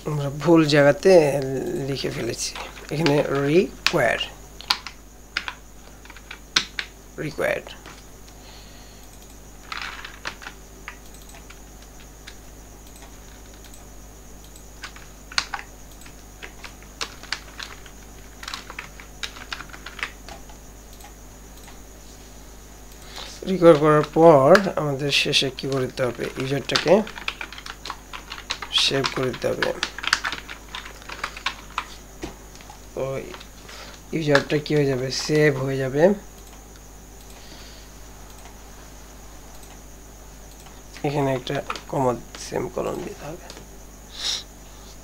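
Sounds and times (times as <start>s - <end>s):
computer keyboard keystrokes: 2.6s - 6.9s, 9.0s - 21.8s, 25.5s - 32.0s, 40.5s - 42.5s.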